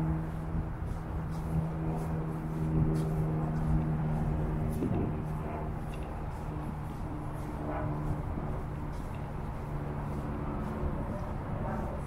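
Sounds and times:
distant road traffic hum: 0.0s - 12.0s
soft footsteps on sand: 0.0s - 12.0s.

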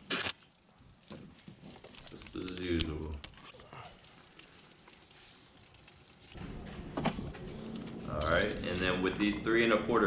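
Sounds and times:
rustling crackling handling noise: 0.0s - 3.6s.

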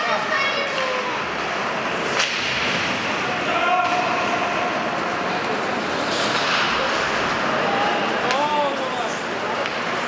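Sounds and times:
crowd and players chattering: 0.0s - 10.0s.

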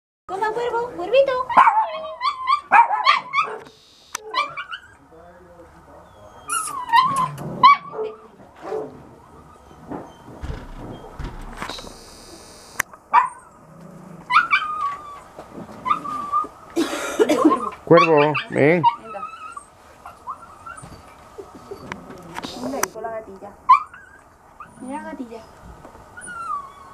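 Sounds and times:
dog whining and yipping: 1.4s - 3.6s, 4.2s - 5.0s, 6.0s - 8.3s, 9.3s - 11.2s, 14.3s - 16.5s, 17.4s - 22.8s, 23.7s - 26.9s
rustling: 9.8s - 12.8s.

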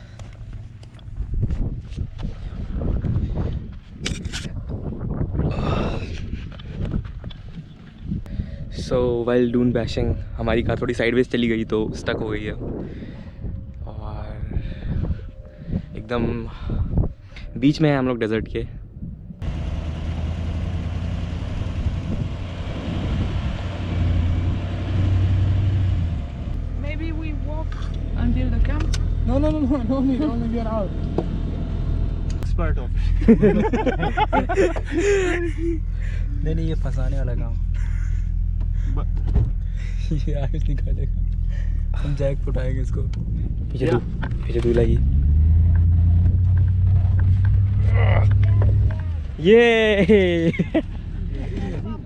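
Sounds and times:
suv engine humming: 19.4s - 52.0s.

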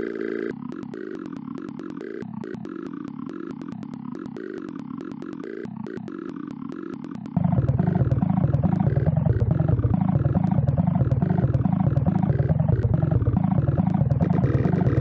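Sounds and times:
distorted chopped sample: 7.2s - 15.0s
heavy bass: 7.4s - 15.0s.

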